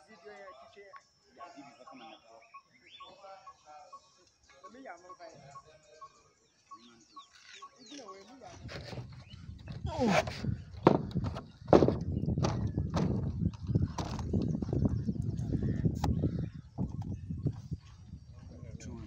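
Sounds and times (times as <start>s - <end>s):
voices talking: 0.0s - 19.0s
sharp knocks: 10.1s - 13.4s.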